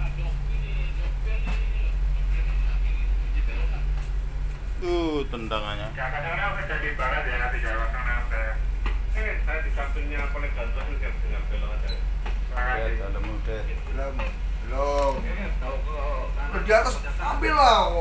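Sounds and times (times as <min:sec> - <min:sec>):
boat engines humming: 0:00.0 - 0:18.0.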